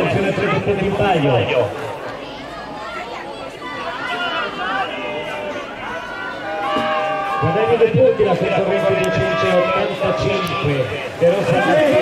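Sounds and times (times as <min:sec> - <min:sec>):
man talking: 0:07.4 - 0:12.0.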